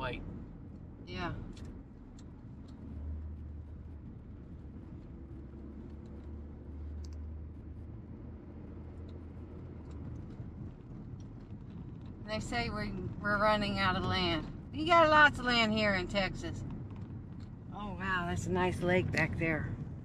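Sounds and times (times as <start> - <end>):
car engine and road hum: 0.0 - 20.0.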